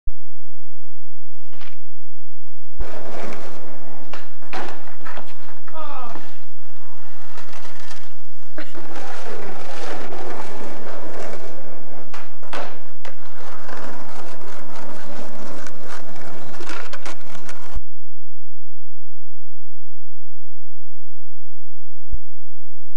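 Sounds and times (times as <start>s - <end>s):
skateboard wheels rolling on pavement: 1.3s - 17.8s
skateboard clacks: 2.8s - 17.8s.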